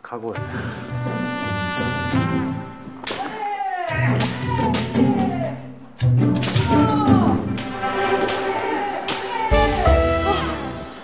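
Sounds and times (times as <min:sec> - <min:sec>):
background music: 0:00.1 - 0:03.3, 0:03.9 - 0:11.0
bamboo swords clacking: 0:03.0 - 0:09.4
drawn-out shout: 0:06.6 - 0:10.9.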